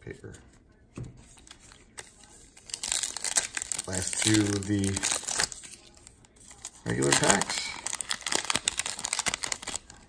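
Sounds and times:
foil wrapper crinkling and tearing: 0:02.0 - 0:10.0.

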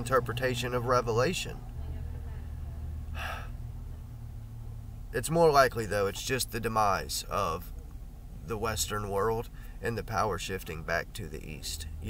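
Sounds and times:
steady low hum: 0:00.0 - 0:12.0
man's sharp in-breath: 0:03.2 - 0:03.6.

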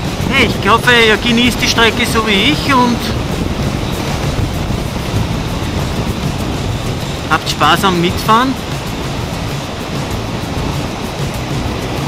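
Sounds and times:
motorcycle running: 0:00.0 - 0:12.0
wind rush: 0:00.0 - 0:12.0.

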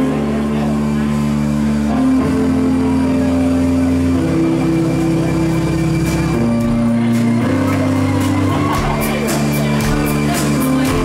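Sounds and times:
live rock band instrumental: 0:03.9 - 0:11.0.

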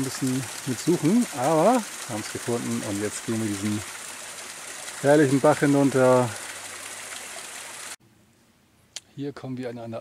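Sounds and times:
brook water rushing: 0:00.0 - 0:08.0.

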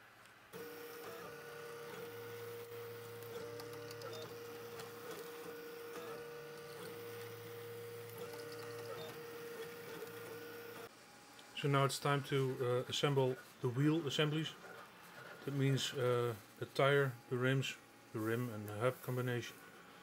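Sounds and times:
three d printer motors whining: 0:00.6 - 0:10.9.

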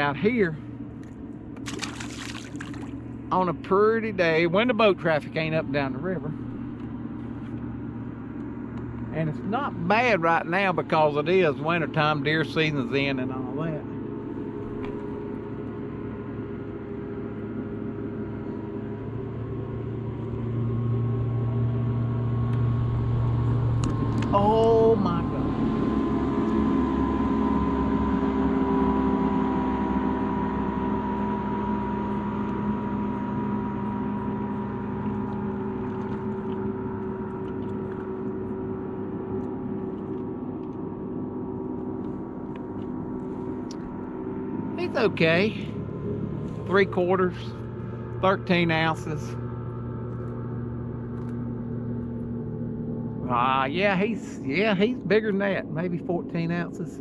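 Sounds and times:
boat motor humming: 0:00.0 - 0:57.0.

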